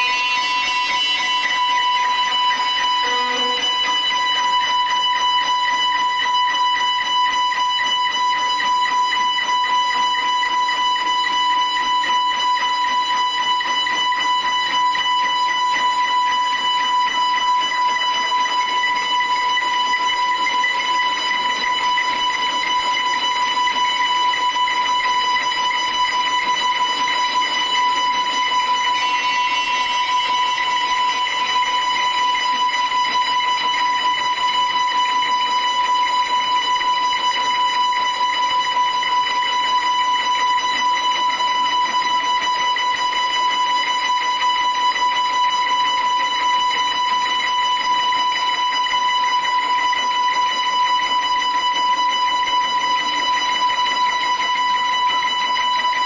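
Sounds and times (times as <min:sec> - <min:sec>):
electric guitars high drone: 0:00.0 - 0:04.2.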